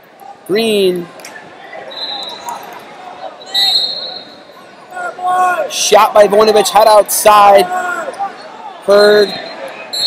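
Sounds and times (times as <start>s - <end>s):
voices echoing in a hall: 0.0s - 10.0s
high-pitched whistle tones: 1.9s - 2.6s, 3.4s - 4.4s, 9.1s - 10.0s.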